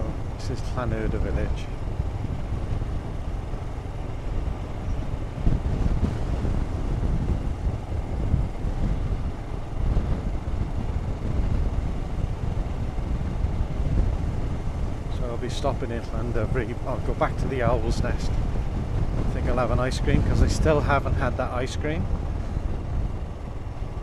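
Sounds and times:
motorcycle engine running: 0.0s - 24.0s
wind noise on microphone: 0.0s - 24.0s.

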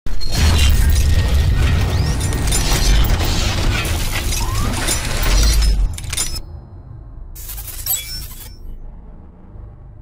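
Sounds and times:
glassy shattering noise: 7.4s - 8.8s.

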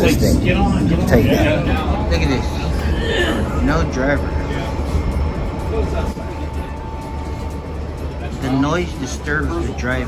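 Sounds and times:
thin steady whine: 0.0s - 10.0s
tram low rumble: 0.0s - 10.0s
background music: 1.0s - 10.0s.

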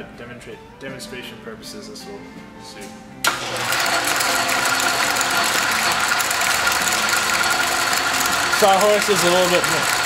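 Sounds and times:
metal lathe whining and rattling: 3.3s - 10.0s.

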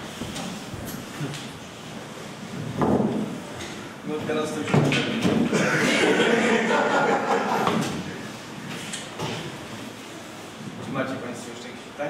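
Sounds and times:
indistinct voices in a hall: 1.4s - 12.0s.

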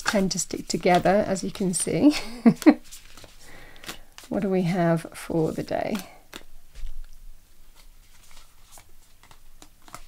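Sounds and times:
cards rustling and clicking: 0.0s - 1.8s, 2.5s - 4.3s, 5.5s - 10.0s.

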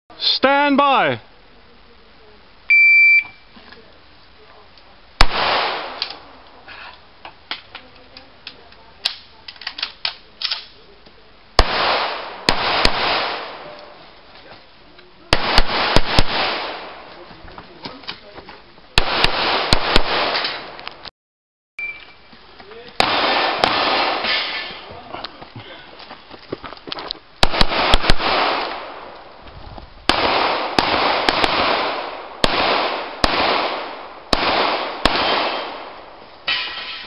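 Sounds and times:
shot timer beep: 2.7s - 3.4s, 21.8s - 22.2s
pistol shots with echo: 5.2s - 6.2s, 11.6s - 13.8s, 15.3s - 17.0s, 19.0s - 20.8s, 23.0s - 24.8s, 27.4s - 29.1s, 30.1s - 36.6s.

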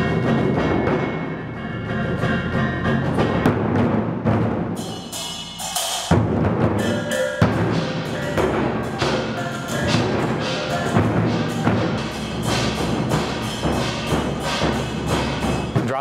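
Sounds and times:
sustained pitched music: 0.0s - 3.6s, 6.8s - 15.8s
barrel drums beating: 0.0s - 16.0s.

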